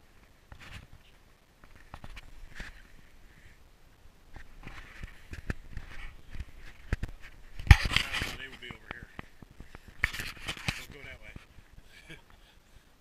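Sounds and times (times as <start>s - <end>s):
camera handling noise: 4.3s - 11.5s
footsteps crunching in snow: 4.3s - 11.7s.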